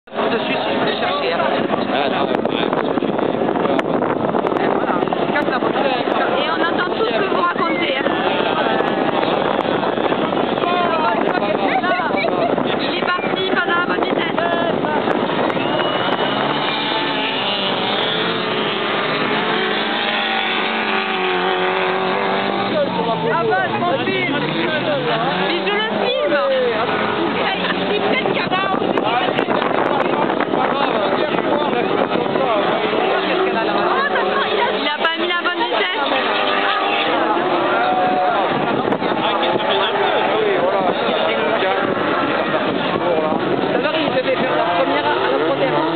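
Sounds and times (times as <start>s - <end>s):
people talking: 0.1s - 45.9s
race car engines passing: 0.1s - 45.9s.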